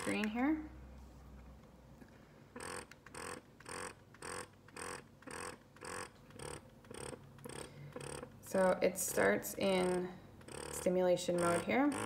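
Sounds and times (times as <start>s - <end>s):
breast pump motor pulsing: 0.0s - 0.4s, 2.6s - 12.0s.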